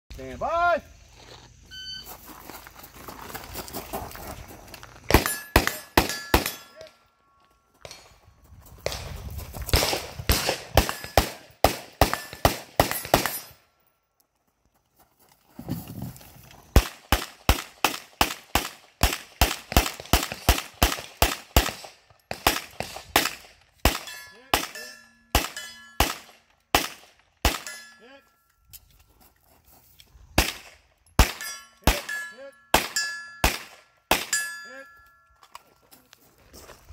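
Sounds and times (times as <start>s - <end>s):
bullets ringing on steel targets: 5.1s - 7.1s, 10.8s - 13.6s, 23.9s - 26.5s, 27.5s - 28.5s, 30.4s - 35.5s
rapid handgun fire: 9.7s - 13.5s, 16.8s - 24.8s, 25.4s - 27.7s, 32.8s - 34.4s.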